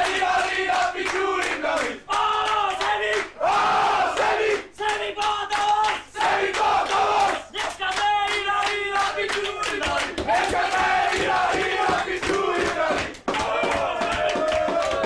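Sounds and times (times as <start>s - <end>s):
hands clapping: 0.0s - 15.0s
men chanting: 0.0s - 15.0s.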